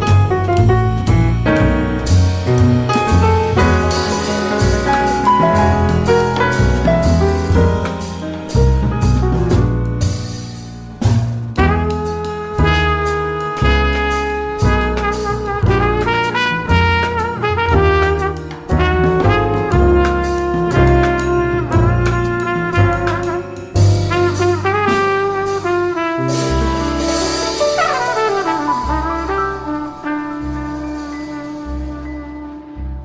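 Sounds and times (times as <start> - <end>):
double bass: 0.0 - 33.0
piano chords: 0.0 - 33.0
trumpet melody with bent notes: 3.0 - 6.7, 11.6 - 33.0
trumpet run and held note: 3.5 - 6.7, 24.3 - 32.7.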